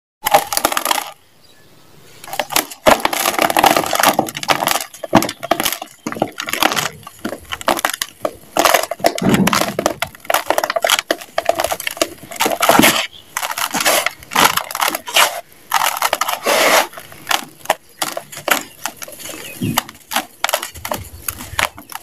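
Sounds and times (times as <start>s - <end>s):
compacted sand crumbling: 2.2s - 22.0s.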